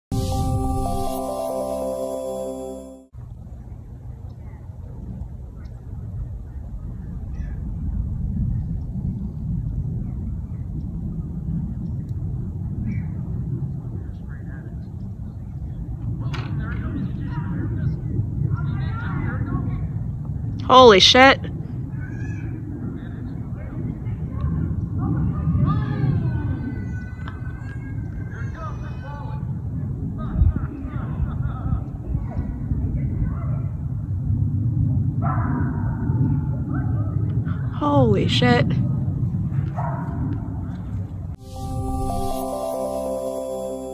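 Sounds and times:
low outdoor rumble: 3.2s - 20.6s.

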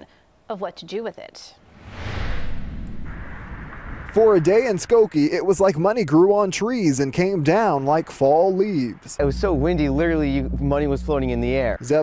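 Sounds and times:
deep boom with whoosh: 1.7s - 5.1s.

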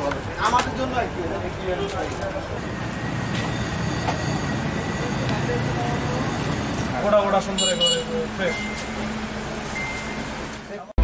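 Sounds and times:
motor vehicle rumbling: 0.0s - 11.0s.

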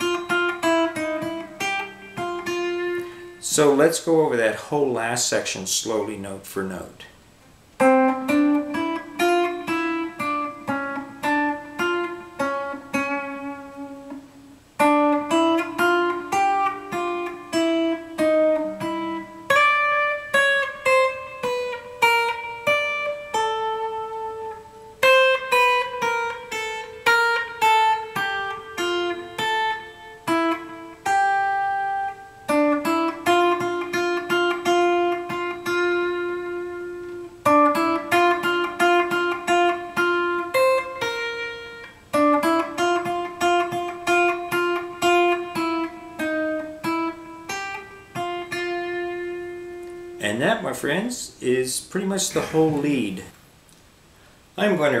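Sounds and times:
electric guitar lead line: 0.0s - 6.1s, 7.4s - 53.5s.

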